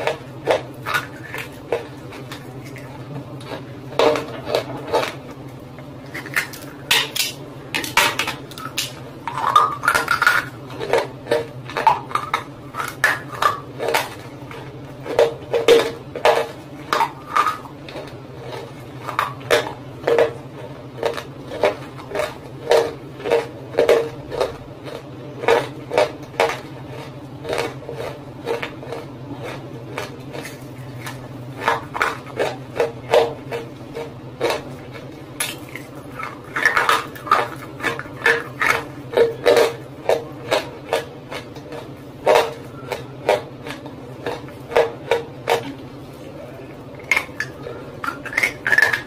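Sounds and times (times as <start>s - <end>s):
roasted clay crunching and cracking: 0.0s - 49.0s
steady low hum: 0.0s - 49.0s.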